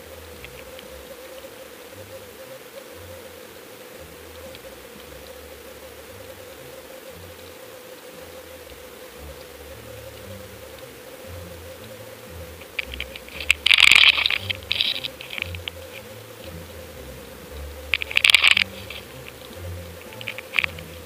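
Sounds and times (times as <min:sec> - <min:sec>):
faint clicks: 0:00.0 - 0:03.4, 0:04.1 - 0:21.0
steady mid-pitched hum: 0:00.0 - 0:21.0.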